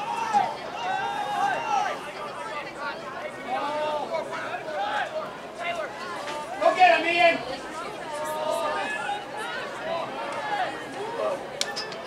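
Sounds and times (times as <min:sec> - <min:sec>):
crowd chatter: 0:00.0 - 0:12.0
voices calling and shouting: 0:00.0 - 0:12.0.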